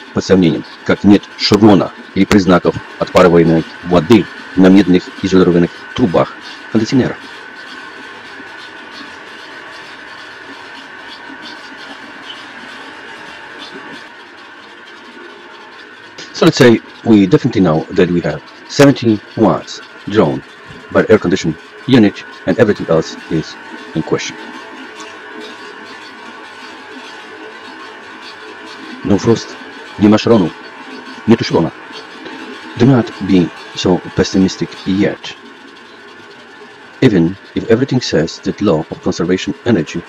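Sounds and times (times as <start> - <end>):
air conditioner fan whirring: 0.0 - 40.0.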